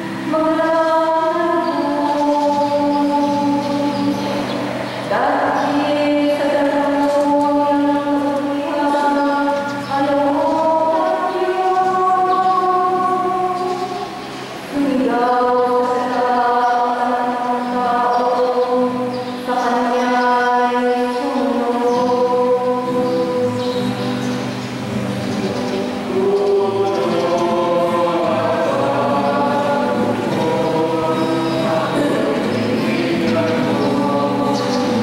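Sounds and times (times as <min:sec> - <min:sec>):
woman singing into a microphone: 0:00.0 - 0:14.1, 0:14.7 - 0:24.0, 0:25.4 - 0:35.0
voices singing a slow chant: 0:00.0 - 0:35.0.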